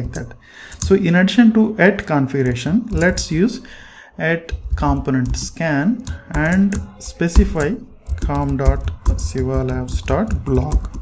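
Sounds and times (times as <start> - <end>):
typing on keyboard: 0.0 - 1.0, 2.3 - 3.6, 4.5 - 11.0
man speaking: 0.0 - 11.0.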